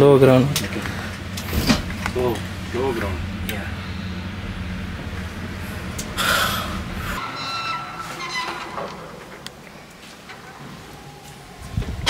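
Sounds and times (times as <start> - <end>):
lift hum: 0.0 - 12.0.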